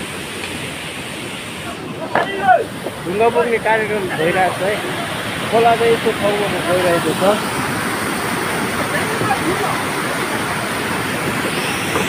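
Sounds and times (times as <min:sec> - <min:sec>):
stream rushing over rocks: 0:00.0 - 0:12.0.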